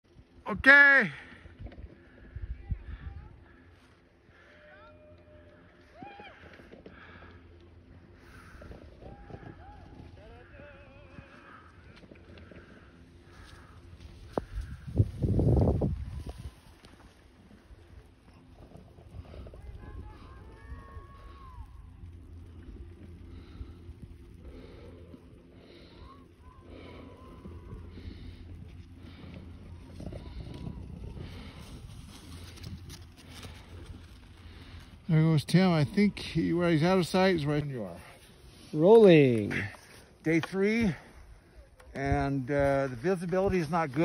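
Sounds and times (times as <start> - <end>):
wind rumble on microphone: 1.5 - 3.6, 8.4 - 35.1.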